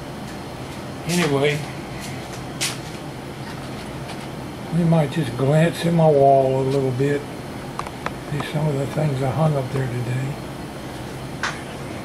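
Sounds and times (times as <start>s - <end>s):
air conditioner hum: 0.0s - 12.0s.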